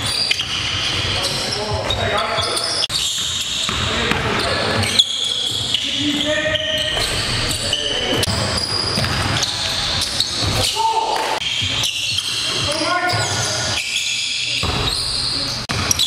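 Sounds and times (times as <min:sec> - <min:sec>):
sneaker squeaks: 0:00.0 - 0:16.0.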